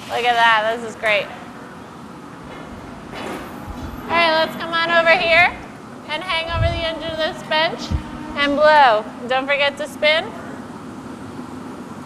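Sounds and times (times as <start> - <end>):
furnace burners roaring: 0.0 - 12.0.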